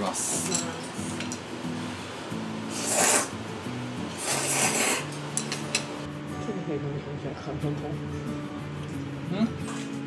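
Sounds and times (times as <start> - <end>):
background music with low notes: 0.0 - 10.0
loud rasping noodle slurp: 2.7 - 3.3, 4.2 - 5.1.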